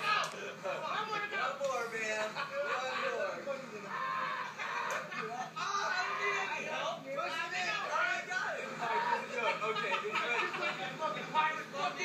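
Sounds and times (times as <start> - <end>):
person crying out: 3.9 - 5.0.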